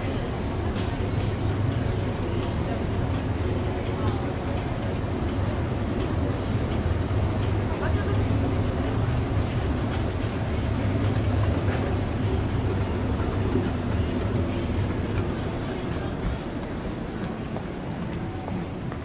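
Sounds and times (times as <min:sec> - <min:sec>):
escalator humming: 0:00.0 - 0:19.0.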